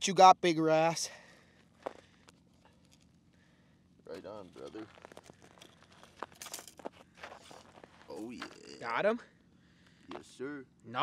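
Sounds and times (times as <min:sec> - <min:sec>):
scraping rustles: 0:04.2 - 0:08.6
boots crunching in snow: 0:04.8 - 0:08.6.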